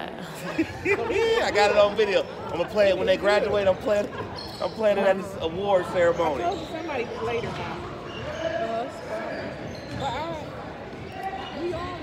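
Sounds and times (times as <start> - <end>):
voices in a gym: 0.0 - 12.0.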